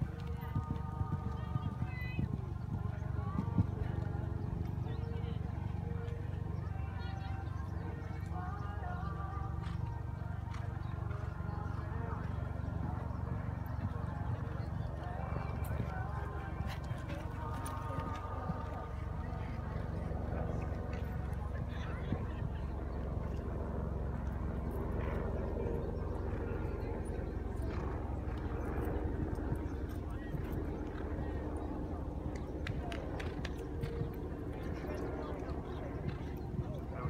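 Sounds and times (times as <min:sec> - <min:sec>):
horse hoofbeats on sand: 0:00.0 - 0:06.2, 0:12.9 - 0:19.7
faint voices: 0:00.0 - 0:37.0
steady low rumble: 0:00.0 - 0:37.0.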